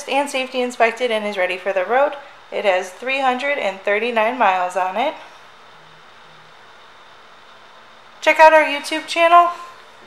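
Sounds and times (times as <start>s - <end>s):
faint hum: 0.0s - 10.0s
low hiss: 0.0s - 10.0s.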